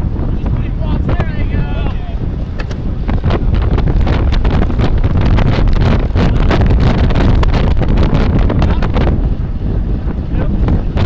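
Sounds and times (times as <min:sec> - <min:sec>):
wind buffeting microphone: 0:00.0 - 0:11.0
riders' voices: 0:00.1 - 0:03.5, 0:05.9 - 0:07.6, 0:08.2 - 0:11.0.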